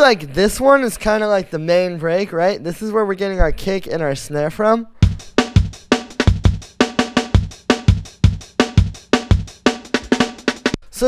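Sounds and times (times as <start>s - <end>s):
fast breakbeat drums: 5.0s - 10.8s.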